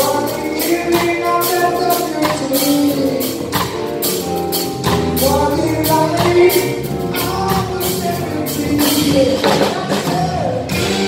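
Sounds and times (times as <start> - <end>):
man singing lead vocal: 0.0 - 3.7, 5.1 - 11.0
drum kit with cymbal hits: 0.0 - 11.0
live band playing: 0.0 - 11.0
electric guitar: 2.2 - 11.0.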